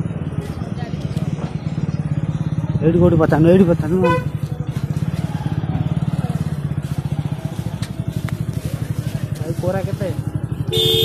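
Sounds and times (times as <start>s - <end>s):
small engine idling: 0.0s - 11.0s.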